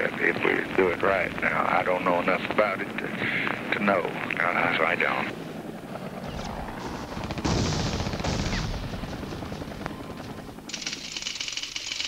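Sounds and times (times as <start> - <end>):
automatic weapon fire: 6.5 - 11.4.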